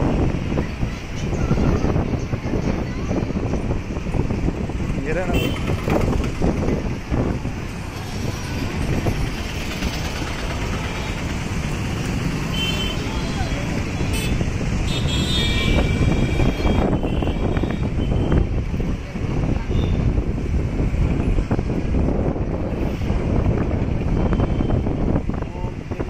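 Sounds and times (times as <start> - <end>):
motorbikes and rickshaws in traffic: 0.0 - 26.0
people talking: 0.5 - 3.8, 13.0 - 14.1.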